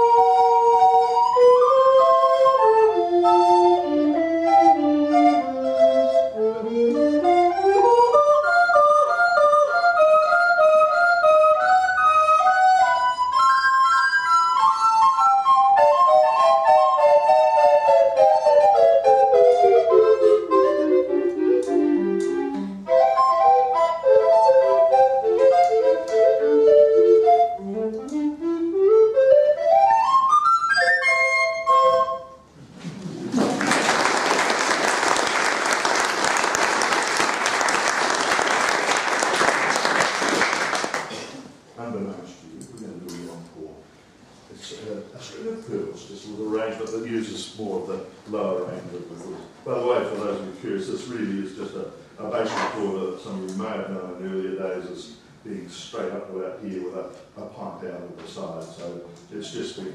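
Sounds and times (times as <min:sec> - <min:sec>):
recorder ensemble playing: 0:00.0 - 0:32.6
audience applause: 0:33.0 - 0:41.3.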